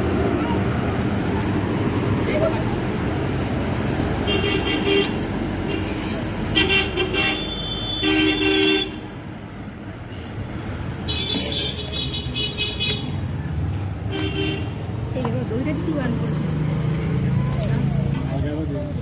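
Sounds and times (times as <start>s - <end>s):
traffic engines rumbling: 0.0s - 19.0s
vehicle horns honking: 4.2s - 9.1s, 11.1s - 13.2s, 14.1s - 14.8s.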